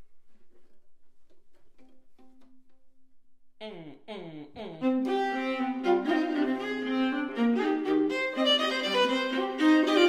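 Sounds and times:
viola plucks and taps: 0.6 - 3.2.

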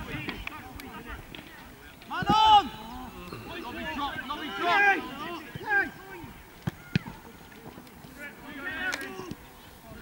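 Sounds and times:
footballers shouting: 2.0 - 7.4, 8.1 - 10.0.

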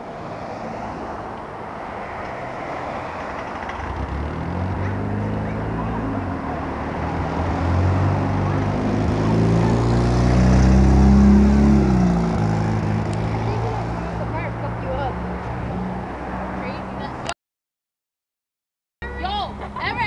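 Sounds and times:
vehicle engine passing: 2.0 - 17.2.

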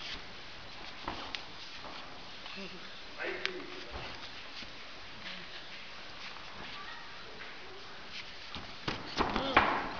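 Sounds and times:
low background noise: 0.0 - 9.9.

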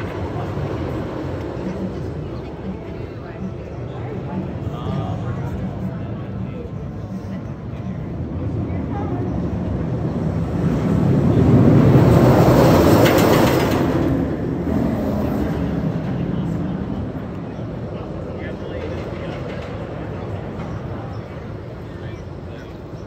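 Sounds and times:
roller coaster train on steel track: 0.0 - 23.0.

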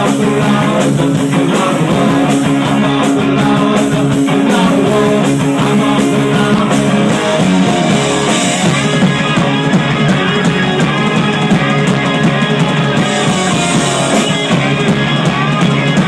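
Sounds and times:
live punk rock band: 0.0 - 16.0.

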